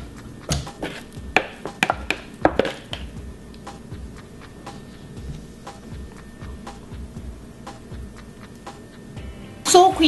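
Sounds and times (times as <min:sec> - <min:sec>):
pestle pounding dough in mortar: 0:00.5 - 0:03.3.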